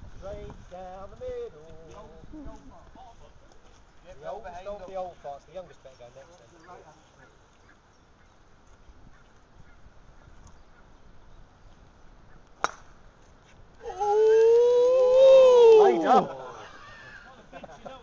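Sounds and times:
golf club striking ball: 12.6s - 13.0s
person crying out: 13.8s - 17.2s.

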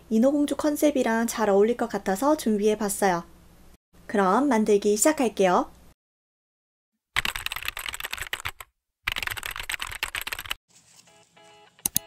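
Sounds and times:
soft music: 10.8s - 12.0s.

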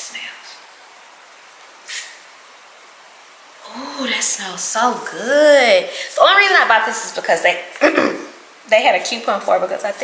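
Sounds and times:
aerosol spray hiss: 1.8s - 2.3s.

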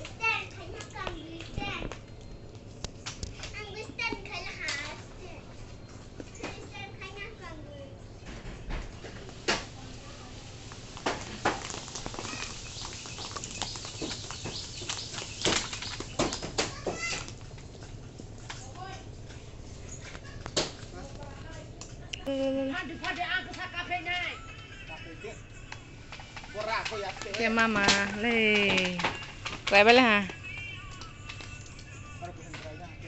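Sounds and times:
children calling and chattering: 0.0s - 2.6s, 3.2s - 11.3s, 11.9s - 14.3s, 14.9s - 32.7s
bamboo pole knocking branches: 10.6s - 17.5s, 26.5s - 29.9s.

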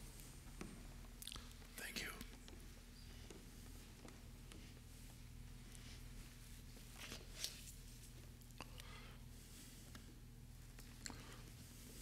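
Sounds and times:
low electrical hum: 0.0s - 12.0s
soft clicks and rustles: 0.0s - 12.0s
person whispering: 1.7s - 2.4s.

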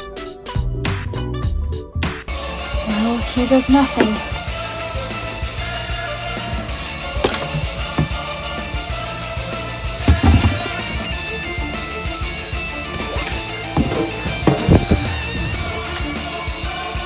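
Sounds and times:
rock music with guitar: 0.0s - 17.0s.

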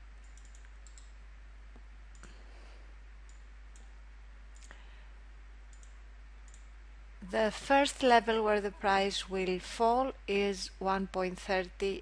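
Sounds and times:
low steady hum: 0.0s - 12.0s
computer mouse clicks: 0.2s - 2.4s, 3.2s - 4.8s, 5.7s - 6.7s.

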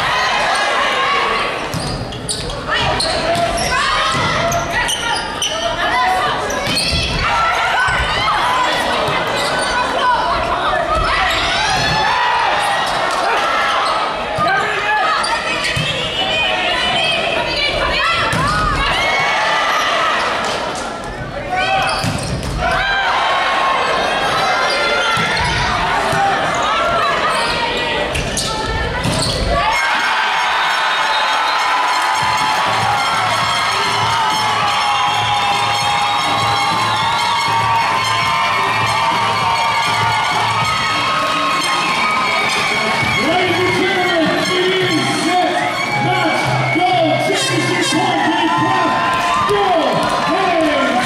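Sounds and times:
players shouting: 0.0s - 51.0s
sneakers squeaking on court: 1.6s - 5.8s, 8.7s - 9.9s, 21.8s - 22.6s, 24.6s - 25.7s, 27.2s - 29.6s
volleyball hits: 21.8s - 22.8s, 25.0s - 26.5s.

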